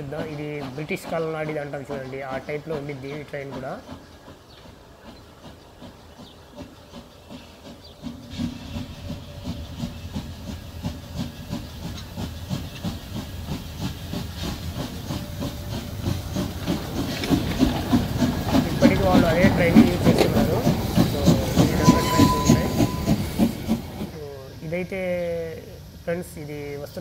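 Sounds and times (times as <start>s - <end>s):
hiss of steam: 0.0s - 27.0s
steam locomotive chuffing: 0.0s - 27.0s.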